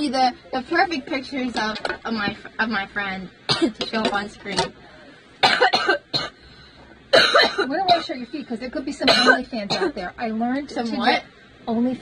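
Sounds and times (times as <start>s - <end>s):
woman coughing: 3.5s - 3.8s, 5.4s - 6.4s, 7.1s - 8.2s, 9.1s - 10.1s.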